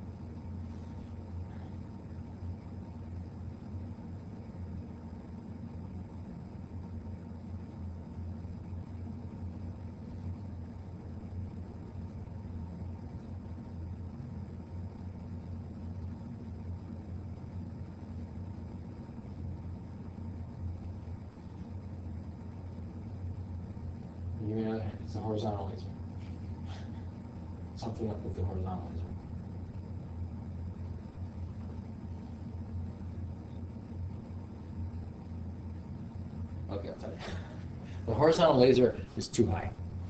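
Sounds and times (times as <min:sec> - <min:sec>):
low hum: 0:00.0 - 0:40.0.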